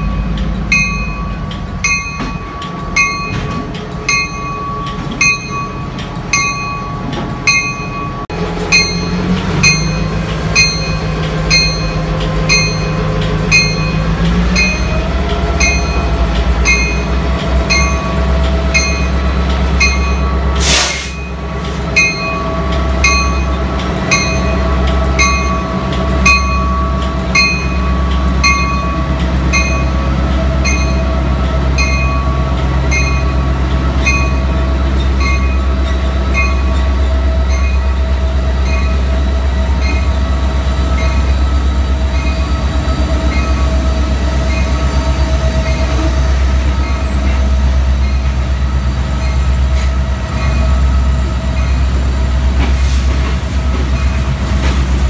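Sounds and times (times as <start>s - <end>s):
locomotive bell ringing: 0.0s - 52.6s, 53.4s - 54.7s
diesel locomotives rumbling: 0.0s - 55.0s
air hiss: 20.6s - 21.2s.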